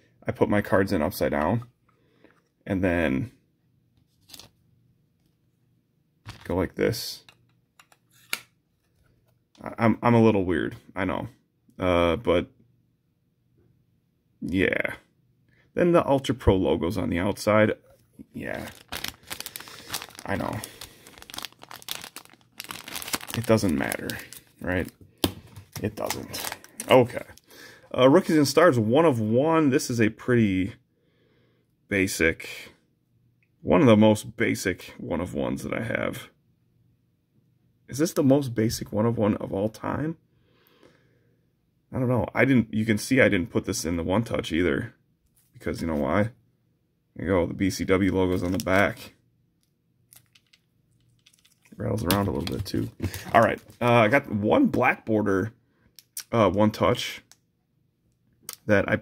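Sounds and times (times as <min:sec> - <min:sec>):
plastic sleeve crinkling: 0:18.1 - 0:27.5, 0:48.2 - 0:49.0, 0:50.1 - 0:54.3.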